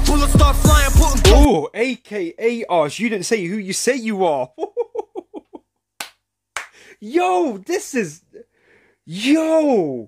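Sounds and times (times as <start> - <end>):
man laughing: 4.2 - 5.7
hand clap: 6.0 - 6.8.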